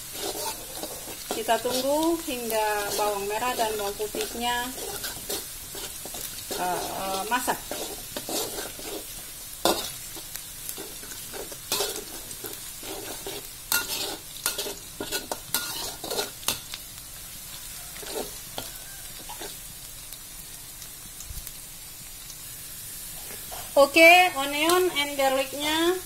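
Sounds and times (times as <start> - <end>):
metal spatula scraping a wok: 0.0 - 16.8, 18.0 - 19.7, 23.1 - 24.0
shallots sizzling in hot oil: 0.0 - 26.0.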